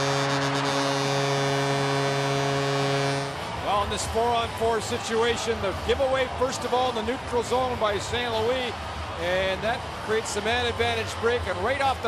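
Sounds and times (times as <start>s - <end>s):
goal horn blast: 0.0s - 3.8s
crowd cheering: 0.0s - 12.0s.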